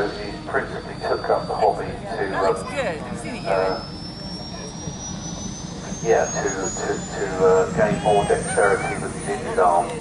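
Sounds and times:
model aircraft engines droning: 0.0 - 10.0
thin high whine: 0.0 - 10.0.

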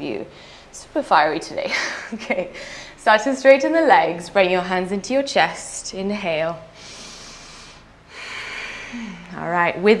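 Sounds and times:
woman breathing deeply: 0.3 - 0.8, 2.5 - 3.0, 6.7 - 9.4.

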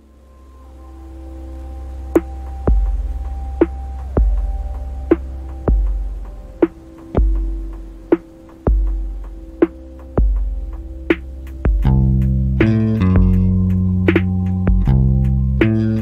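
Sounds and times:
synthesizer drone: 0.0 - 16.0
sub-bass pulse: 2.1 - 16.0.

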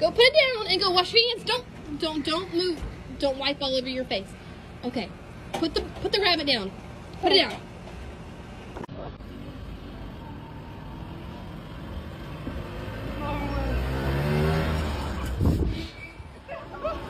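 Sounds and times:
small car engine passing by: 9.2 - 17.0.

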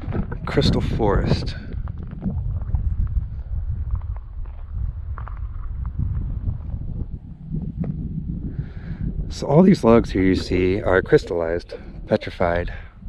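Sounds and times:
wind buffeting microphone: 0.0 - 13.0
footsteps on gravel: 1.6 - 6.9.

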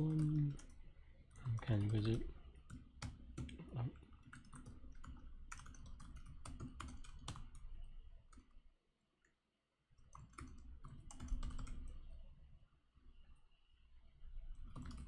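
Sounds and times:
typing on computer keyboard: 0.0 - 8.6, 10.0 - 12.2, 14.5 - 15.0.

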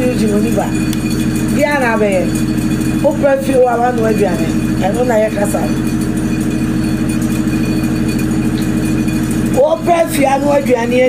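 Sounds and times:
engine idling: 0.0 - 11.0.

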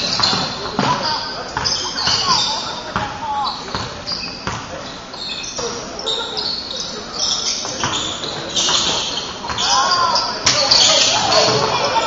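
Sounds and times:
basketball bouncing: 0.0 - 4.7
players calling out: 0.0 - 12.0
sneakers squeaking: 0.0 - 12.0.

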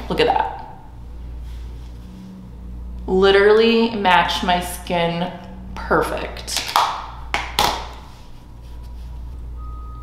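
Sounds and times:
low hum: 0.0 - 10.0
quieter lower tone: 0.6 - 6.5, 8.8 - 10.0
high electronic beep: 9.6 - 10.0.

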